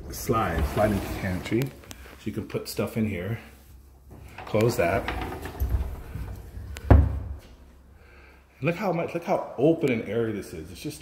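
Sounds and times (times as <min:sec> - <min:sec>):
sliding door rumbling: 0:00.2 - 0:01.6, 0:04.4 - 0:06.3.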